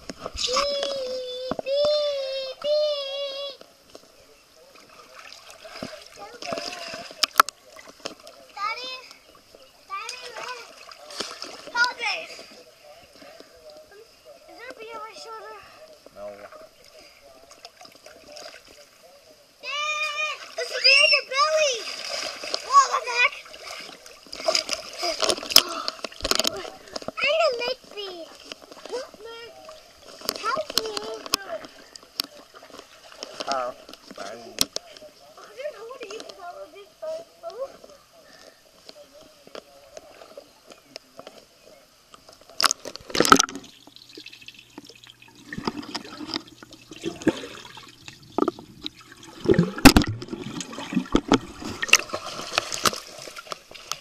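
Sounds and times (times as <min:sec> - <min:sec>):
muffled underwater sloshing: 0:00.0 - 0:54.0
water splashing in pool: 0:04.0 - 0:15.5, 0:16.1 - 0:36.3, 0:42.4 - 0:54.0
child shouting: 0:19.6 - 0:21.9
sharp knocks underwater: 0:42.5 - 0:43.7, 0:45.5 - 0:54.0.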